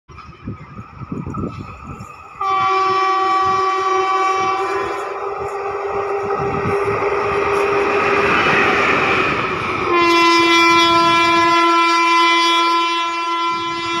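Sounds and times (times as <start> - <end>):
train wheels clattering on rails: 0.1 - 11.9
locomotive horn blast: 2.4 - 8.8, 9.8 - 14.0.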